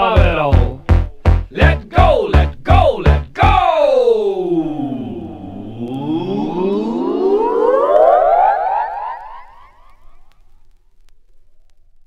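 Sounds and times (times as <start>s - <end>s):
synthesizer siren-like pitch glide: 5.0s - 9.9s.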